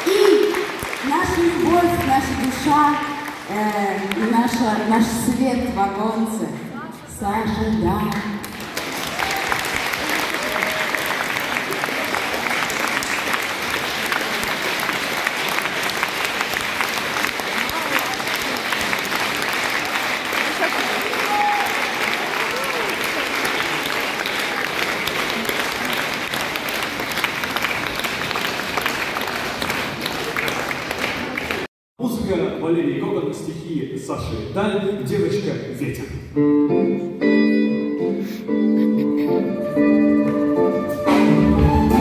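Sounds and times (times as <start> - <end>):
audience applauding: 0.0 - 4.8, 8.4 - 31.7.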